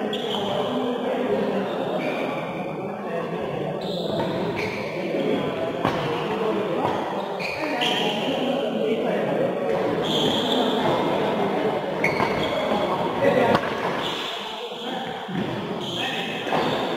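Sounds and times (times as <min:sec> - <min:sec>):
voices echoing in a large hall: 0:00.0 - 0:16.9.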